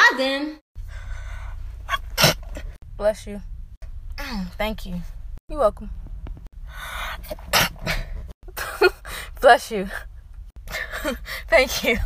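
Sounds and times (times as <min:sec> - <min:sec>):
woman sneezing: 0:01.9 - 0:02.5.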